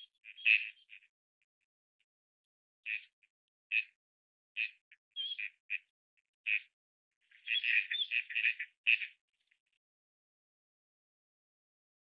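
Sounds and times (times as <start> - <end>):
bird chirps: 0.0 - 1.1, 2.9 - 4.0, 4.6 - 5.9, 6.5 - 9.7.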